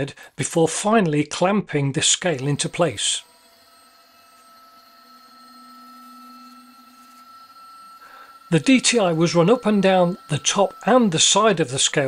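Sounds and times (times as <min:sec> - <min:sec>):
thin high steady whine: 0:02.0 - 0:12.0
machine feed motor humming: 0:02.2 - 0:12.0.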